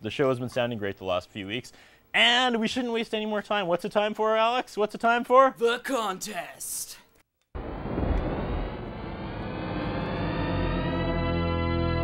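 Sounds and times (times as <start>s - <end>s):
dense droning swell rising in pitch: 7.6s - 12.0s.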